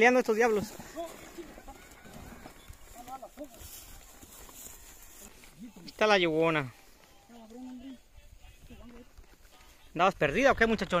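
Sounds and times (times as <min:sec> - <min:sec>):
horses walking through grass: 0:00.0 - 0:11.0
faint voices: 0:00.6 - 0:10.2.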